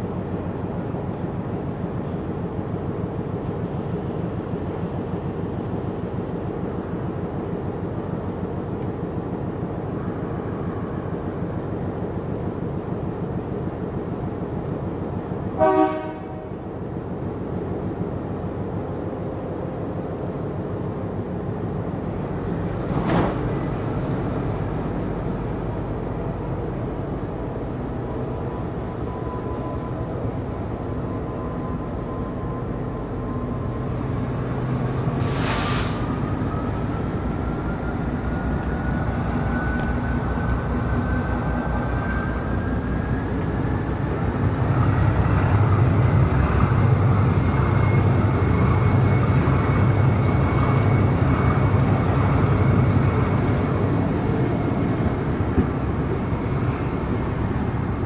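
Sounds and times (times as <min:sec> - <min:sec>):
diesel locomotive engine idling: 0:00.0 - 0:58.0
train horn blast: 0:15.6 - 0:16.5.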